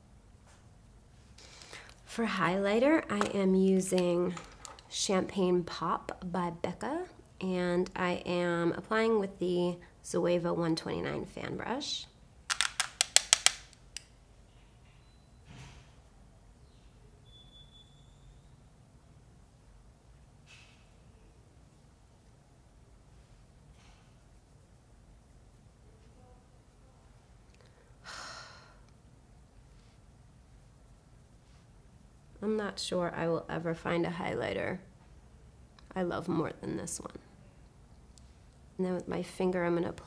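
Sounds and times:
breathy exhalation: 27.7 - 28.9.

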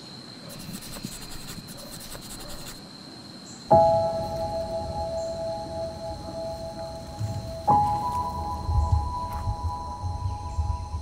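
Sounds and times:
insects high-pitched whine: 0.0 - 11.0
insects rapid chirring: 0.0 - 11.0.

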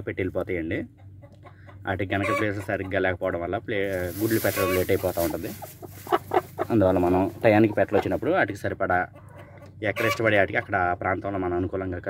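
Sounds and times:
hen clucking: 0.7 - 11.9
straw rustling: 3.8 - 8.4.

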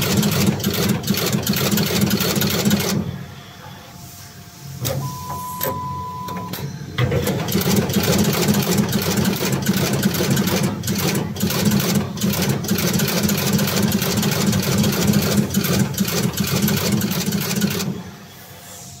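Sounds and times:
machine mechanical drone: 0.0 - 19.0.

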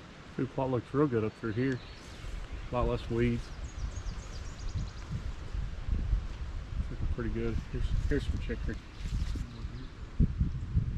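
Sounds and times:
footsteps through grass: 1.8 - 6.7, 7.4 - 9.8.

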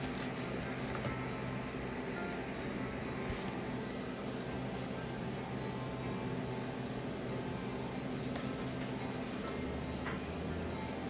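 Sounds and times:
gas heater humming: 0.0 - 11.0.

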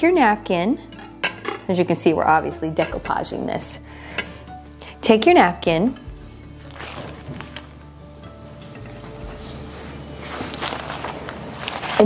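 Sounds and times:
paper napkin rustling and crackling: 6.6 - 7.9, 8.9 - 12.0.

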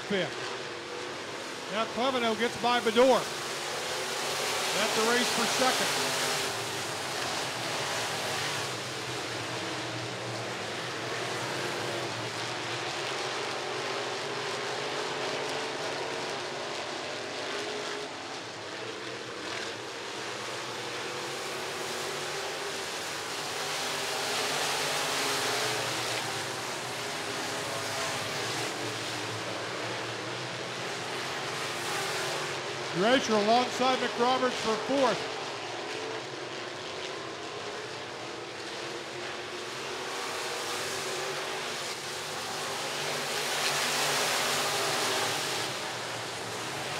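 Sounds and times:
race car engines droning: 0.0 - 46.9.

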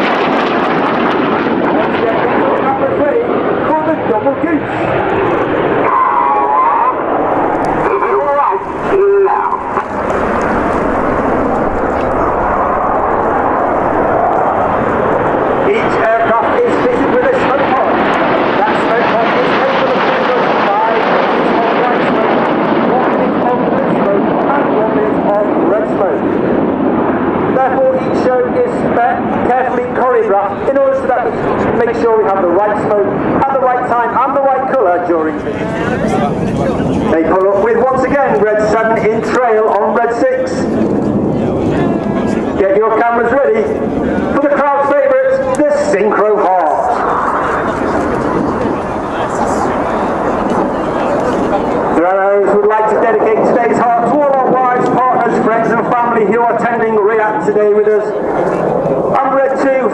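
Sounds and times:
jet roar passing overhead: 0.0 - 59.9
faint voices: 1.6 - 26.4, 27.4 - 59.9.

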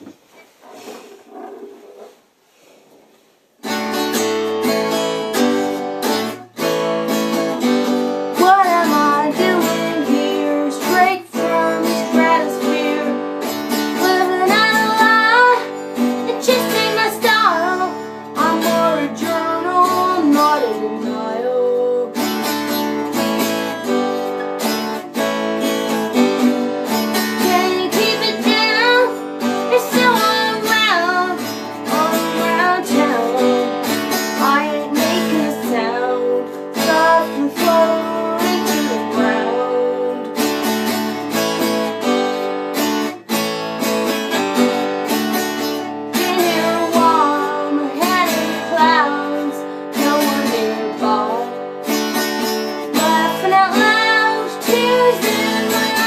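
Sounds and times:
strummed acoustic guitar: 3.6 - 56.0
woman singing: 8.3 - 22.9, 25.6 - 41.2, 45.7 - 56.0.

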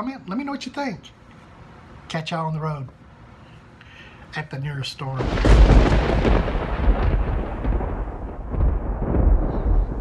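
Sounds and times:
rolling thunder rumbling: 5.2 - 10.0.

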